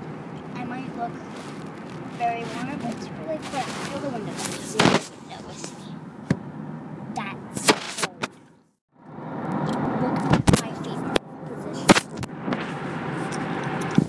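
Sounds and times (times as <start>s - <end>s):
car cabin road noise: 0.0s - 14.0s.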